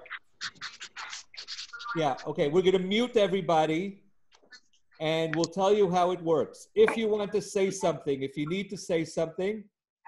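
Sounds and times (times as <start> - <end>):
scratchy rustling: 0.0 - 2.3
person's voice: 6.8 - 9.7.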